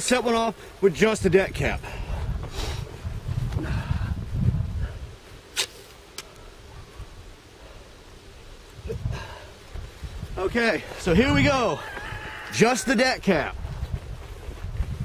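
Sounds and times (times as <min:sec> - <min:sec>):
wind rumbling on microphone: 0:00.9 - 0:05.5, 0:06.4 - 0:15.0.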